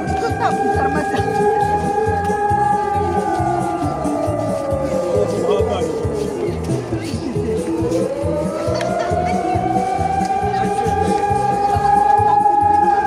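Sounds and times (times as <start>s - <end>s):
dance music with steady beat: 0.0s - 13.0s.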